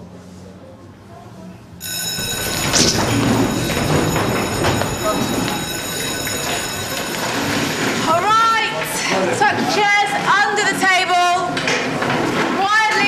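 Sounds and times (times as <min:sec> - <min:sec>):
electric school bell ringing: 0:01.8 - 0:09.6.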